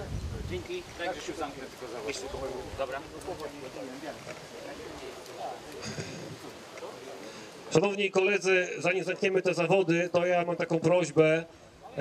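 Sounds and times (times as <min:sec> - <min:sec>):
faint background voices: 0:00.0 - 0:07.9.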